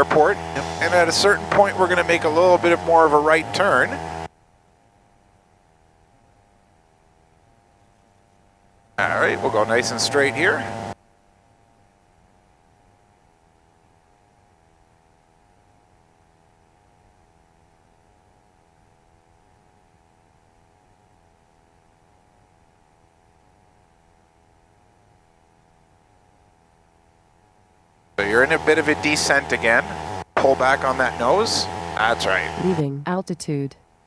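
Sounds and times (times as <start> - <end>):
faint hum and hiss: 4.2 - 28.4.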